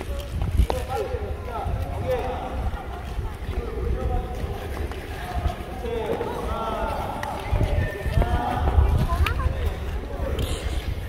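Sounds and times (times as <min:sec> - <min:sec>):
indistinct voices: 0:01.6 - 0:11.0.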